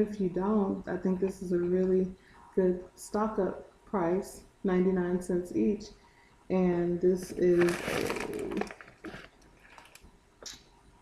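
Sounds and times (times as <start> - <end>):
food bag rustling and crinkling: 7.2 - 10.1.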